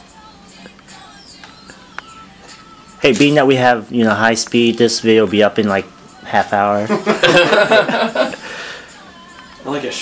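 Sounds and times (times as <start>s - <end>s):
faint voices in a room: 0.0s - 10.0s
person laughing: 6.9s - 8.6s.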